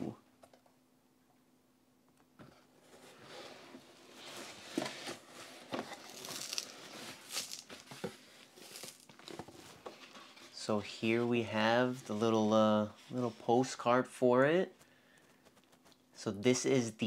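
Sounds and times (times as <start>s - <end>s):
cardboard packaging rustling: 2.7s - 11.0s.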